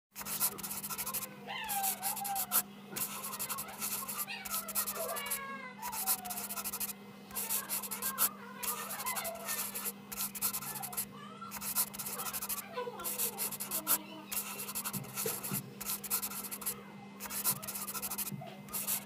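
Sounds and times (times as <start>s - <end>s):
pencil scratching on paper: 0.2s - 19.0s.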